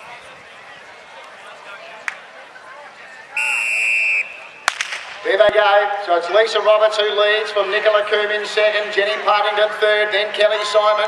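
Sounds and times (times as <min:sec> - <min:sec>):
sharp crack: 0:04.6 - 0:05.6.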